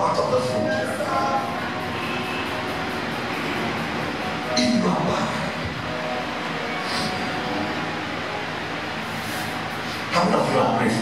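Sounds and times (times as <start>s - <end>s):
faint music: 0.0s - 11.0s
steady background sound: 0.0s - 11.0s.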